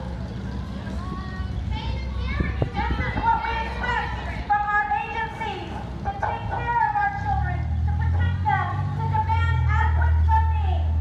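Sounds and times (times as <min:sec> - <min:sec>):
indistinct voices talking: 0:00.0 - 0:11.0
low rumble of street noise: 0:00.0 - 0:11.0.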